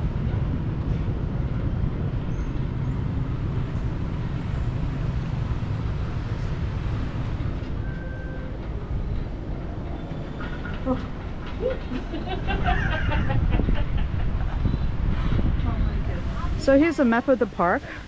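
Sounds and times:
cable car cabin rumble: 0.0 - 18.0.

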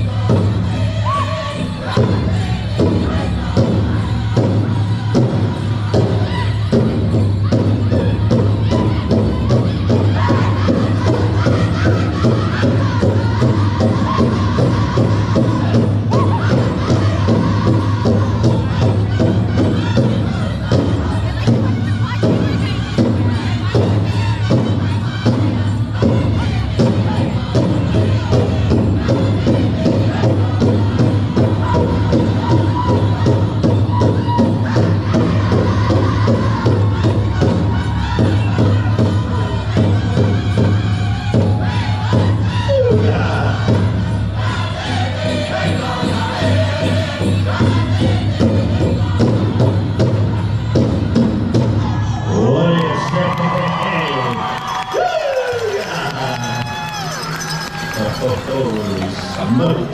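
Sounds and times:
drum group singing: 0.0 - 53.1, 54.0 - 59.9
big drum unison beats: 0.0 - 59.9
voices shouting and calling out: 41.3 - 46.6, 51.8 - 59.9.

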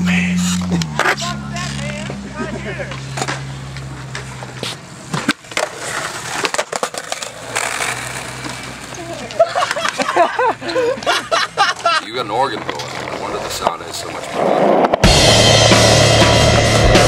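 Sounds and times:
skateboard rolling on concrete: 0.0 - 17.0
skateboard clacks: 0.4 - 10.3, 11.0 - 15.1
laughter: 2.4 - 3.0, 9.2 - 12.1.

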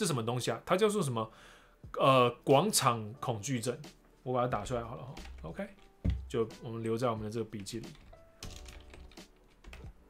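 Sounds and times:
typing on computer keyboard: 7.6 - 10.0.

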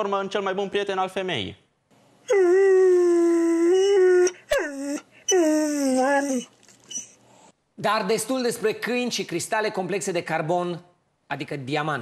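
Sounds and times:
dog howling: 2.3 - 7.1.

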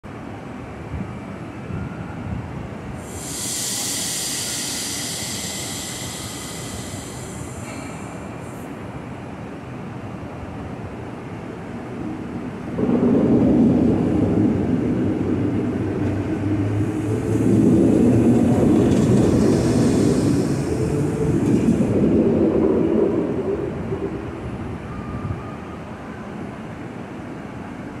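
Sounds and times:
electric train running past: 0.1 - 28.0
wheels rumbling on rails: 0.1 - 28.0.

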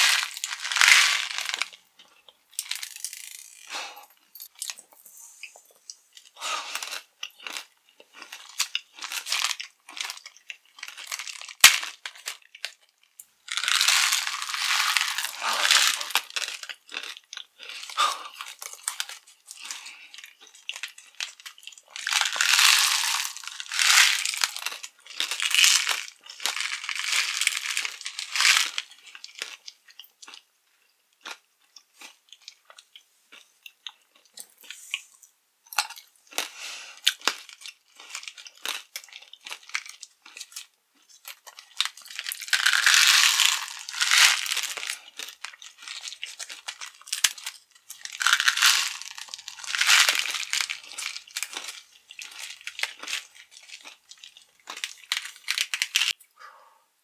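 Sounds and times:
chewing hard candies: 0.0 - 35.1, 35.7 - 56.3.

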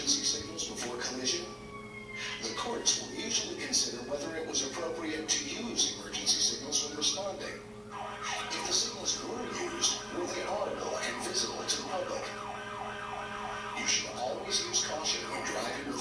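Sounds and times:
emergency siren through speakers: 1.2 - 4.5, 7.8 - 16.0.

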